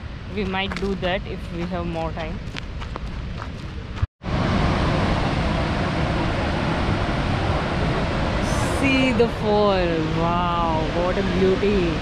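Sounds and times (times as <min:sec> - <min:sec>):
outdoor wind rumble: 0:00.0 - 0:12.0
wind on microphone: 0:00.0 - 0:12.0
waterfall roar: 0:04.3 - 0:12.0.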